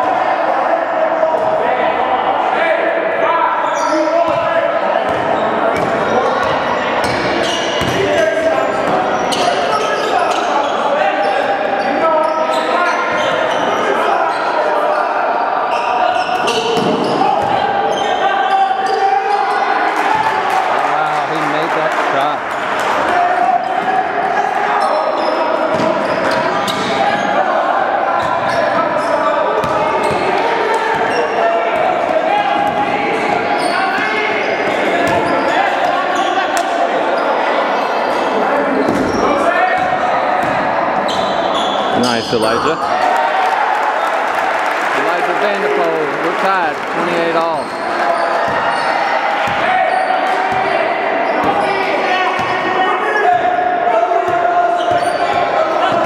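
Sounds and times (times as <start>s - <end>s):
murmur of voices: 0.0s - 56.0s.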